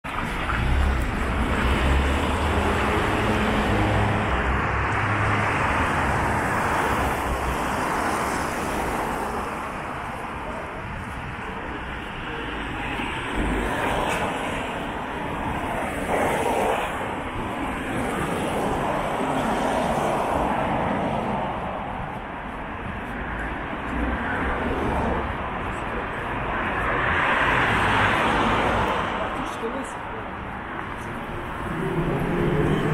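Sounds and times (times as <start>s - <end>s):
cars passing: 0.1s - 32.9s
trolleybus passing: 0.1s - 32.9s.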